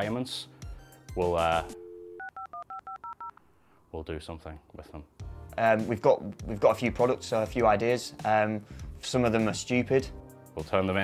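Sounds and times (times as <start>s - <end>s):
touch-tone beeps: 1.7s - 3.3s
telephone dial tone: 1.8s - 3.4s.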